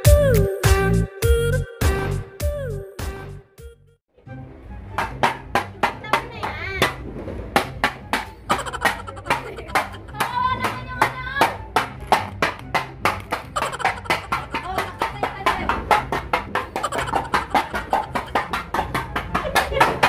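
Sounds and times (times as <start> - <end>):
metal pots and pans banged: 11.8 - 20.0.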